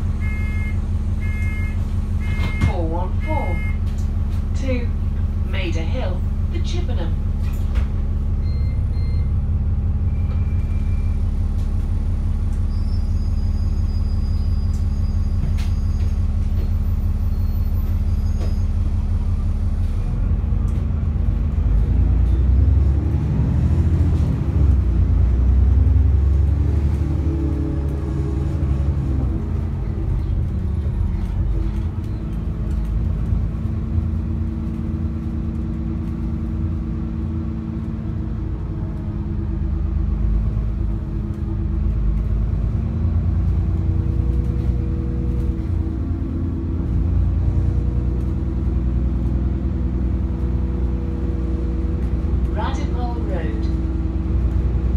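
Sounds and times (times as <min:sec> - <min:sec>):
bus diesel engine: 0:00.0 - 0:54.9.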